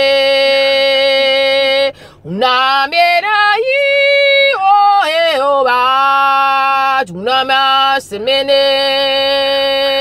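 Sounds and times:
woman singing wordless chant: 0.0s - 10.0s.

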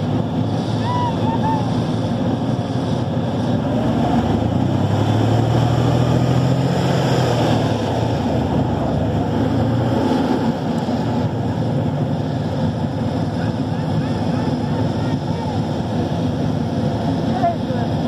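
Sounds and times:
heavy diesel engine running: 0.0s - 18.0s.

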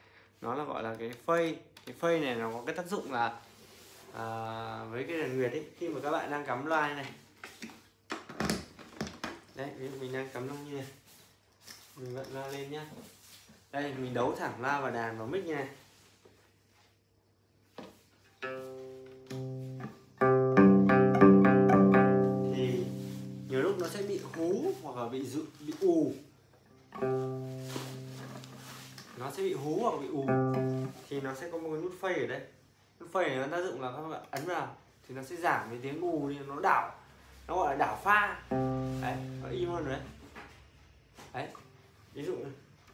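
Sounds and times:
amplified lute string plucked: 18.4s - 24.5s, 26.9s - 29.1s, 30.2s - 31.0s, 38.5s - 40.1s
person speaking a word: 22.3s - 26.2s, 29.1s - 31.7s, 37.6s - 40.2s.

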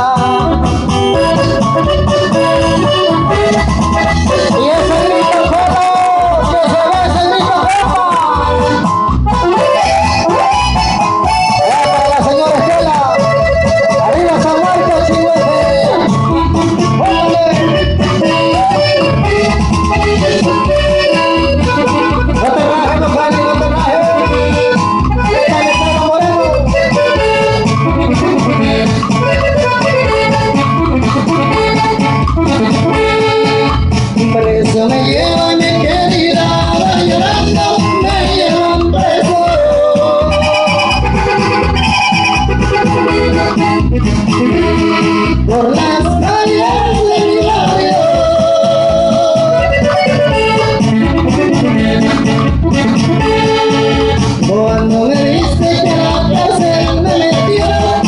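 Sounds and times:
live band playing: 0.0s - 58.0s.

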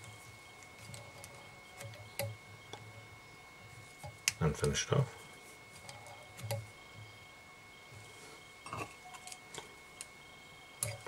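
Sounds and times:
fingers rustling thread: 0.0s - 2.4s, 3.7s - 6.8s.

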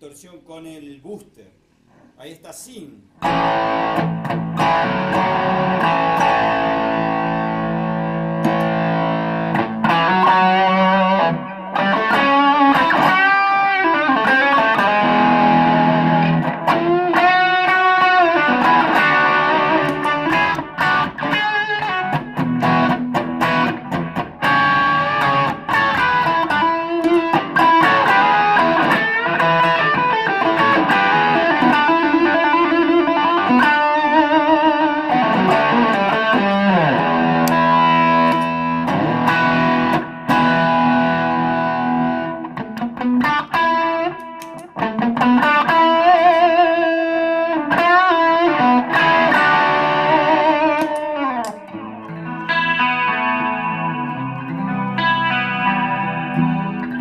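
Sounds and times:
distorted electric guitar lead: 3.2s - 57.0s.

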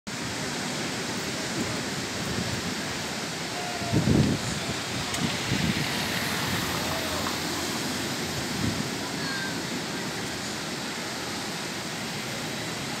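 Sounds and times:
surf breaking on beach: 0.1s - 13.0s.

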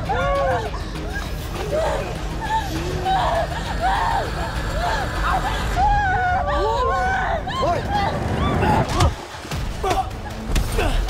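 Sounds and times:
human cries and shouts: 0.0s - 11.0s.

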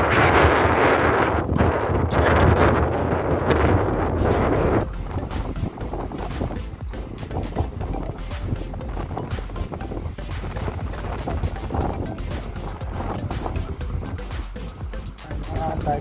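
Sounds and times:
sea surf on rocky shore: 0.0s - 14.5s
wind buffeting microphone: 0.0s - 16.0s.

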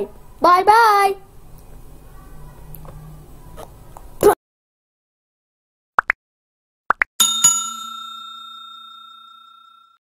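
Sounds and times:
bell dings: 7.2s - 10.0s.

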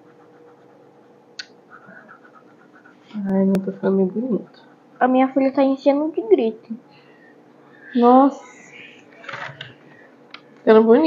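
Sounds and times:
colored pencils scratching on paper: 0.0s - 1.1s, 1.7s - 5.5s.

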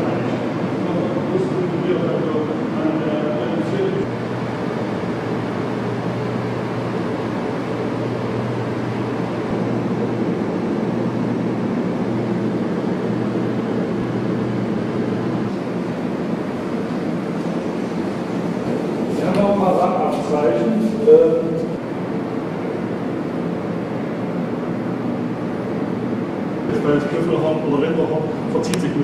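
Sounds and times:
low hum: 0.0s - 29.0s
machine-like rumbling: 0.0s - 29.0s.

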